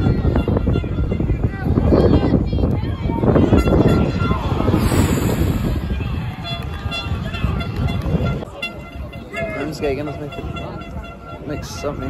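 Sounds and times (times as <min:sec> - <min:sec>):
crowd shouting and cheering: 0:01.0 - 0:09.7.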